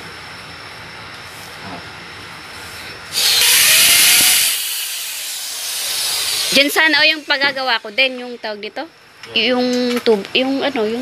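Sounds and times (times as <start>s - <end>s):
power drill against wall: 3.1s - 8.5s.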